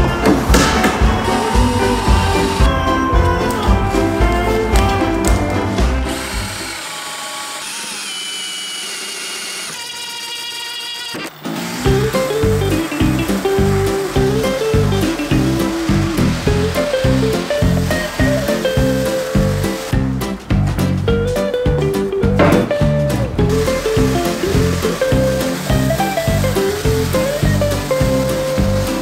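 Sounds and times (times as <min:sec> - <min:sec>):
background music with steady beat: 0:00.0 - 0:06.7, 0:11.9 - 0:29.0
power tool whirring: 0:00.1 - 0:20.1, 0:23.2 - 0:29.0.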